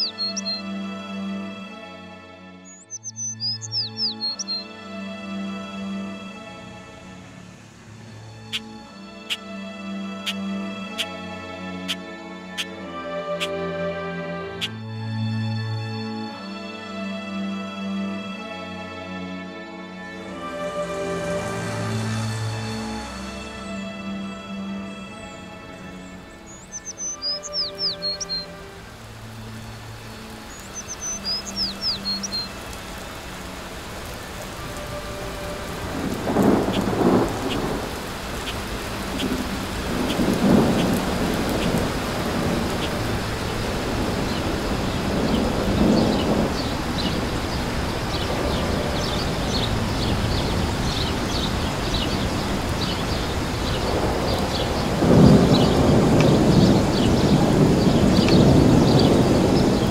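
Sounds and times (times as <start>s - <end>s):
rain: 0.0s - 59.9s
rolls of thunder: 53.8s - 59.9s.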